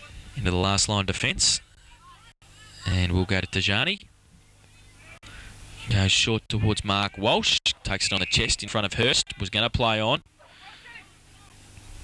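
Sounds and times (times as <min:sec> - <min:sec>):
faint outdoor ambience hiss: 0:00.0 - 0:12.0
man commentating: 0:05.9 - 0:10.2.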